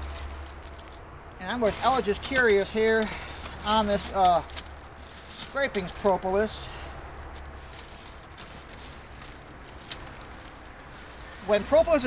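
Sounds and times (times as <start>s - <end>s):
small pieces pattering into plastic bag: 1.6s - 6.6s, 7.2s - 12.0s.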